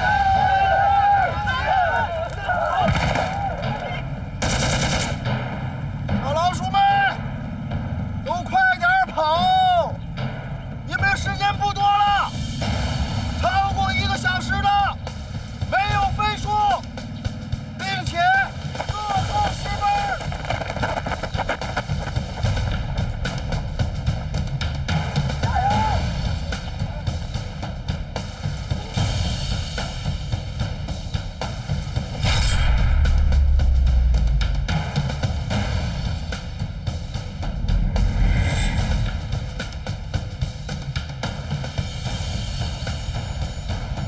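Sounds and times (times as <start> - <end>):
men shouting together: 0.0 - 4.0, 25.4 - 26.2
rapid gunfire: 2.8 - 3.5, 4.4 - 5.3.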